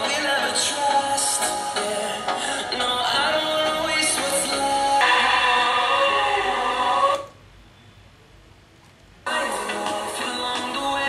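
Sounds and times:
song through small speaker: 0.0 - 7.6, 9.2 - 11.0.

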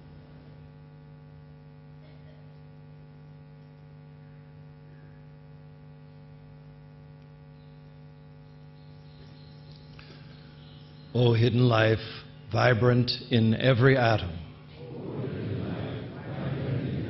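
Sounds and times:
electrical hum: 0.0 - 17.0.

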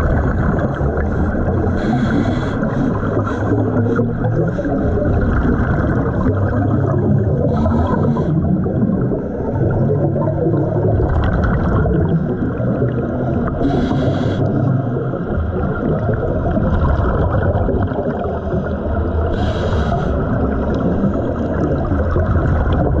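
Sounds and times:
bubbles hissing: 0.0 - 23.0
underwater rumble and gurgle: 0.0 - 23.0.

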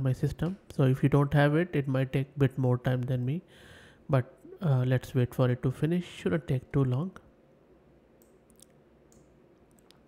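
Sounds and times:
soft clicks: 8.2 - 10.0.

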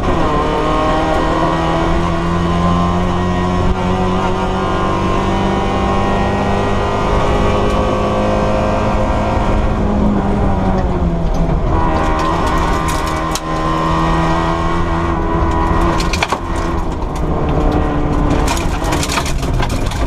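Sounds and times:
race car engine accelerating: 0.0 - 20.0.

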